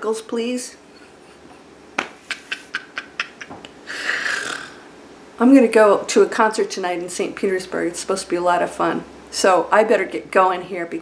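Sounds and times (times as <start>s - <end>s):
woman laughing softly: 0.9s - 4.8s.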